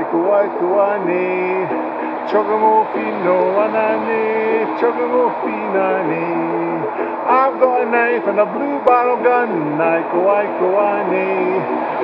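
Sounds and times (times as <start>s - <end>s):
man singing: 0.0s - 12.0s
ukulele: 0.0s - 12.0s.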